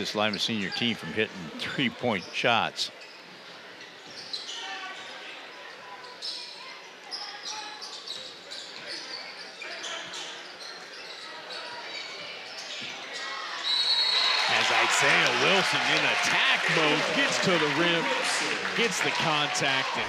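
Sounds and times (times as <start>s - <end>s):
crowd murmur: 0.8s - 2.1s, 14.4s - 20.0s
sneaker squeaks: 3.0s - 14.3s.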